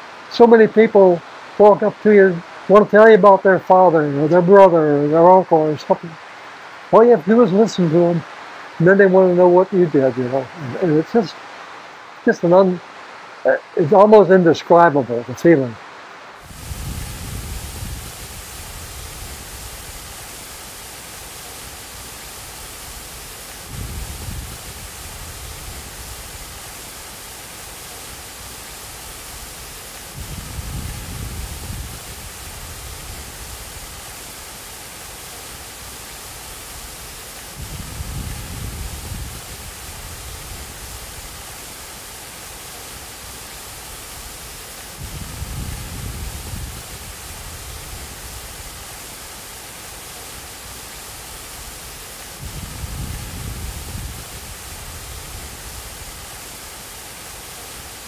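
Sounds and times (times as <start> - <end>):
fountain water rushing: 0.0 - 58.0.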